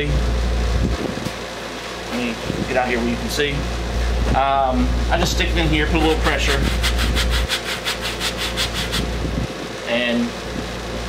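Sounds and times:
wood rasping on sanding sponge: 0:05.7 - 0:09.1.

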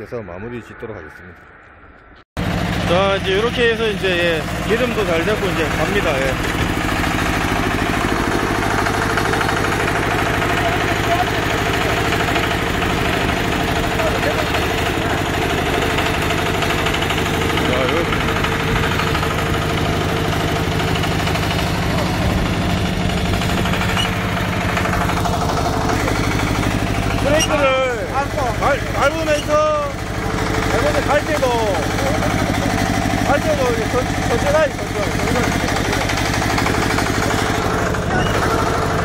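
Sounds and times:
diesel engine chugging: 0:02.4 - 0:39.0.

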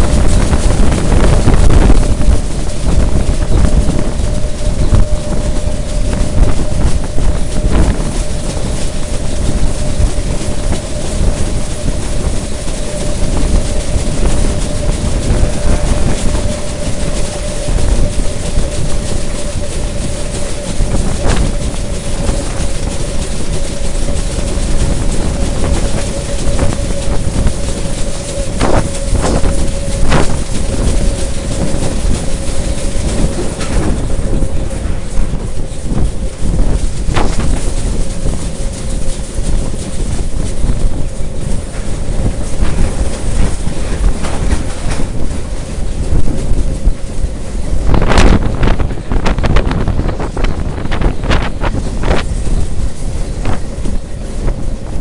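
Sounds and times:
electric train running at speed: 0:00.0 - 0:55.0.

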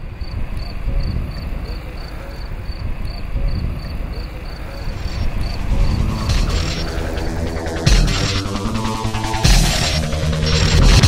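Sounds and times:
low rumble: 0:04.8 - 0:11.0
music: 0:04.8 - 0:11.0.

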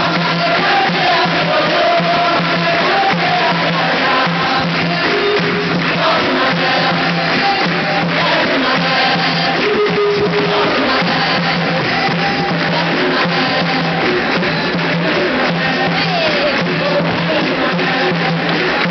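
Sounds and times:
group singing: 0:00.0 - 0:18.9
hand percussion: 0:00.0 - 0:18.9.

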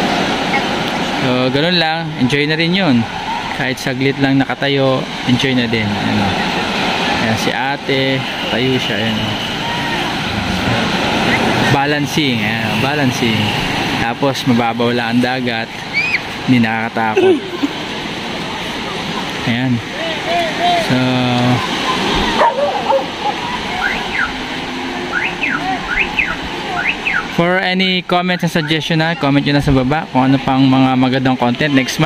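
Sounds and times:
faint voices: 0:02.3 - 0:32.0
small waves breaking: 0:02.9 - 0:12.0, 0:15.6 - 0:27.4
high squeals: 0:07.9 - 0:10.4.

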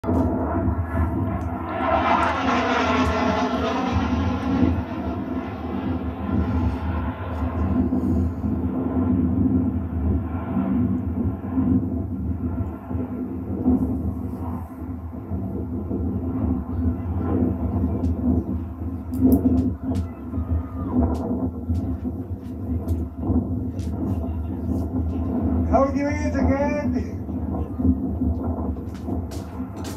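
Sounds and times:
jet flying overhead: 0:00.0 - 0:29.9.

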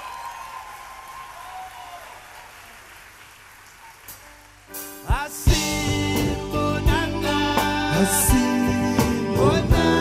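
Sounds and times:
audience applauding and cheering: 0:00.0 - 0:05.3.

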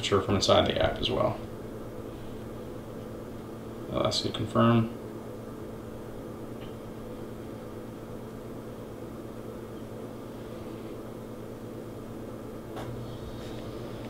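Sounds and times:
cooker humming with tones: 0:00.0 - 0:14.0.

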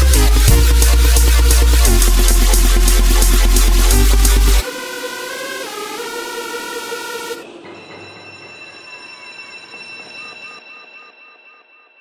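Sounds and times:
loud synth chords: 0:00.0 - 0:07.4.

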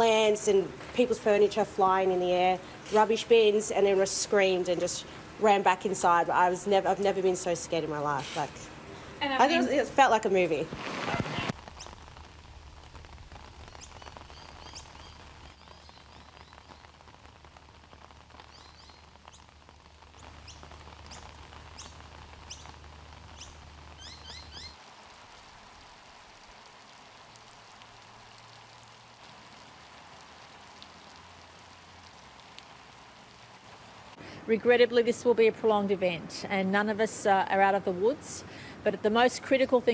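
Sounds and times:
steady rain falling: 0:00.0 - 0:39.9
birds chirping: 0:23.3 - 0:24.8.

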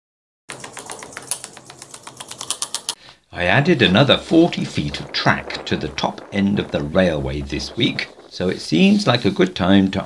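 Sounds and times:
rapid mechanical clicking: 0:00.5 - 0:03.0.

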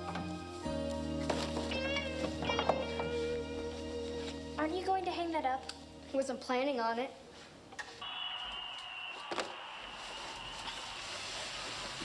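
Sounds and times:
television sports broadcast noise: 0:07.8 - 0:12.0.

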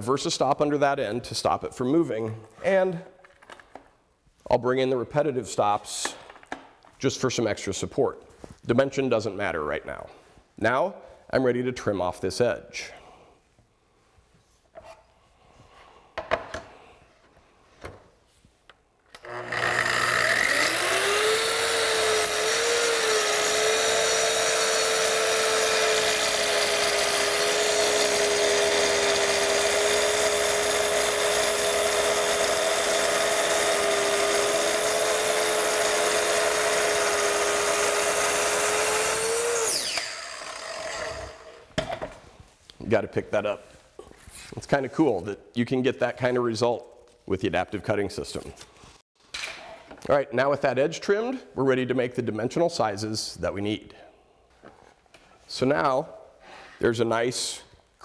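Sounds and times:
track saw whining: 0:19.1 - 0:41.6.

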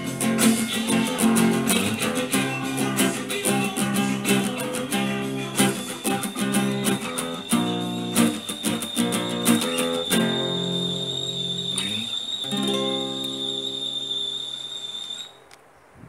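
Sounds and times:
acoustic guitar strumming chords: 0:00.0 - 0:14.6
faint high whine: 0:00.0 - 0:15.8.

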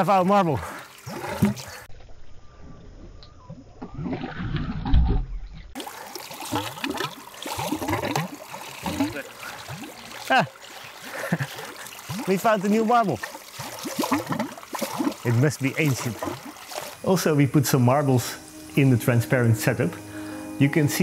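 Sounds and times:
muddy water gushing from hose: 0:00.0 - 0:01.9, 0:05.8 - 0:20.4
water splashing on metal sieve: 0:05.8 - 0:17.2.

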